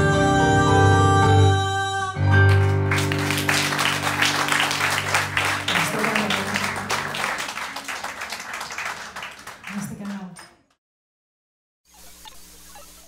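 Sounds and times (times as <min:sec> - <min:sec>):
audience applauding: 0:02.5 - 0:10.7.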